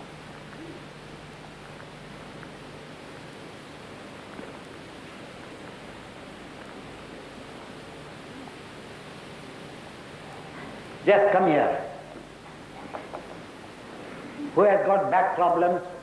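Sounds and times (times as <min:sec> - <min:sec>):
steady recording hiss: 0:00.0 - 0:16.0.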